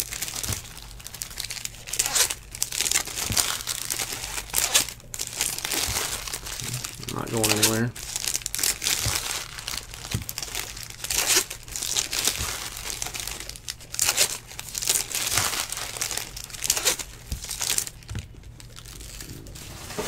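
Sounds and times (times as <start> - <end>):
foil wrappers crinkling and tearing: 0.0 - 20.0.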